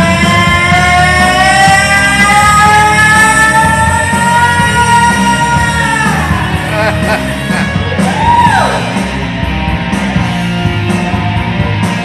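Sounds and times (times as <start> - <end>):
rock karaoke track: 0.0 - 12.0.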